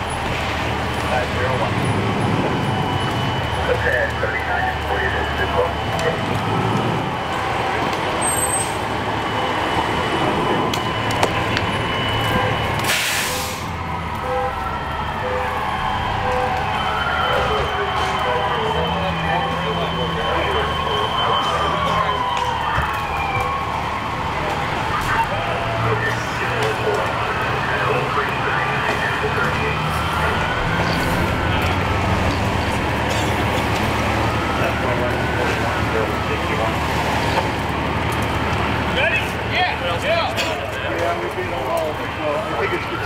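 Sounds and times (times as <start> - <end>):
diesel engine running: 0.0 - 43.0
indistinct voices: 0.0 - 43.0
air hissing burst: 12.8 - 13.7.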